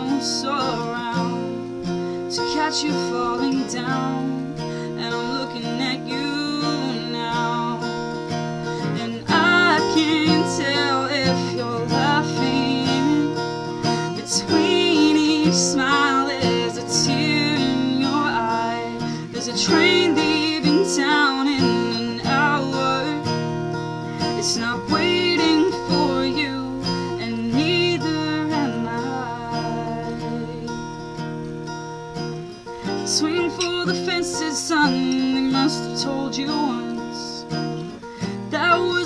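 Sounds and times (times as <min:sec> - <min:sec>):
acoustic guitar strumming: 0:00.0 - 0:39.0.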